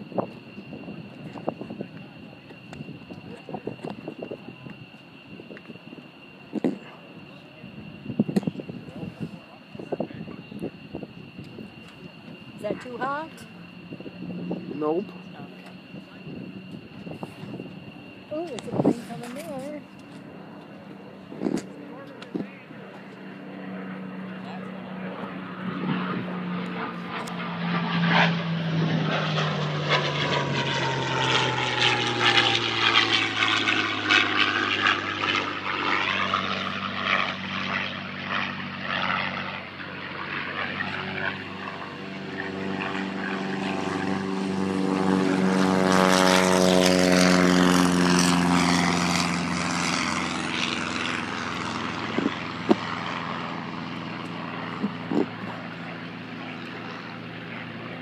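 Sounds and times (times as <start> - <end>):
propeller aircraft engine drone: 0.0 - 58.0.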